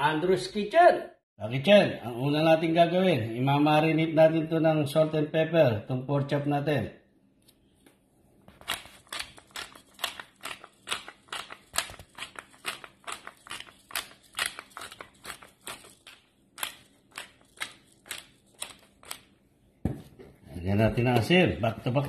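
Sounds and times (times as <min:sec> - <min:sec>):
pepper grinder clicking: 0:08.6 - 0:19.3.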